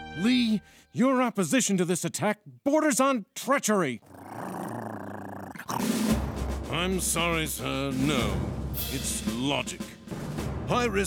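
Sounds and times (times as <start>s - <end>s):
cartoon dog growling: 4.0s - 6.2s.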